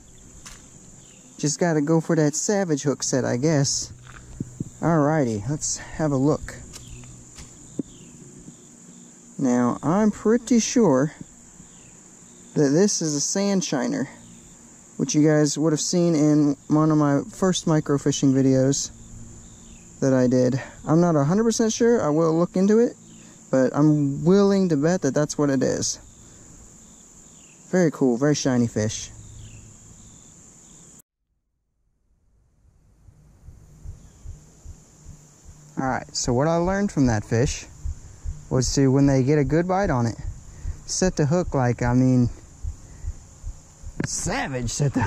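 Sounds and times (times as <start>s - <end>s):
crickets chirping: 0.0s - 31.0s, 32.4s - 45.0s.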